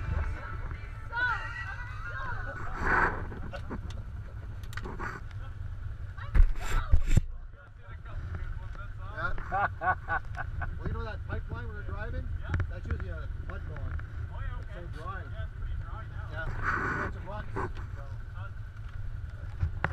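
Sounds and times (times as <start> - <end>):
people laughing and calling out: 0.0 - 7.0, 9.1 - 10.9
engines running low: 0.0 - 19.9.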